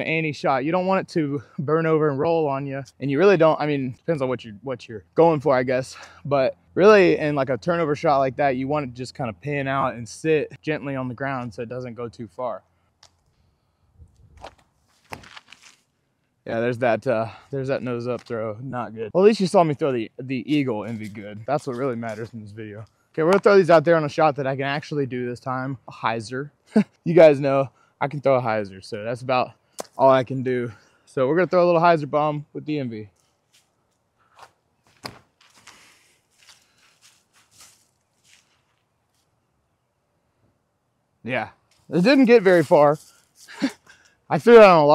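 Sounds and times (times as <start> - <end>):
footsteps on paved path: 14.3 - 15.9, 34.3 - 39.3, 41.7 - 43.8
scuffing steps: 14.4 - 15.9, 34.3 - 39.3
sharp snap: 29.8 - 30.0.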